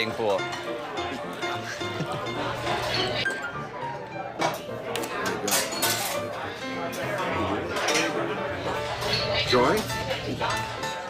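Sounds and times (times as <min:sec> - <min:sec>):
background music: 0:00.0 - 0:11.0
bar chatter: 0:00.0 - 0:11.0
glassware clinking: 0:05.3 - 0:06.3.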